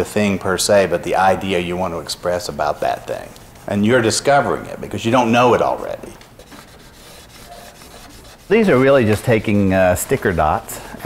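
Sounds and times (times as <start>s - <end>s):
hand rubbing over paper: 1.6s - 4.2s, 4.8s - 11.0s.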